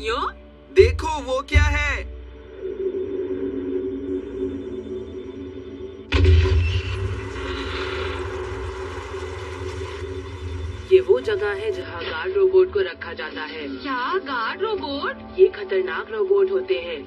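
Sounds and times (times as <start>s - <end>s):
background music: 0.0s - 17.0s
sound effects: 1.6s - 12.2s
loud noisy effect: 2.4s - 11.8s.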